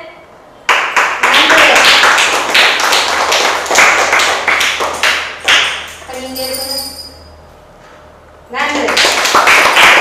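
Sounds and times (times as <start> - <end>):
group clapping hands: 0.7 - 6.1, 8.6 - 10.0.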